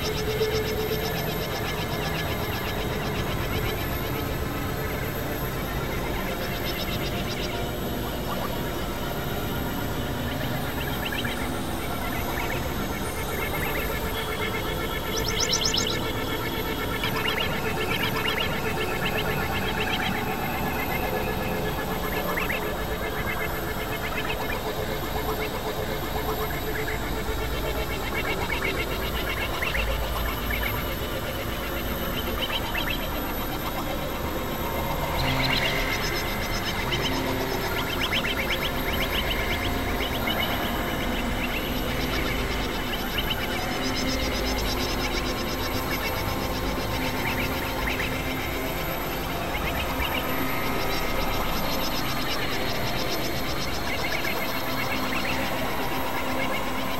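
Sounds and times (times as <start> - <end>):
pulsing chirping synth textures: 0.0 - 56.9
synthesizer drones: 0.0 - 56.9.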